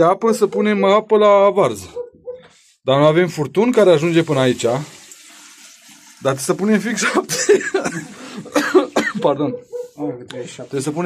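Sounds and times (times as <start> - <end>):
person speaking: 0.0 - 2.2, 8.8 - 11.0
person clearing throat: 7.0 - 9.3
person coughing: 7.0 - 9.3.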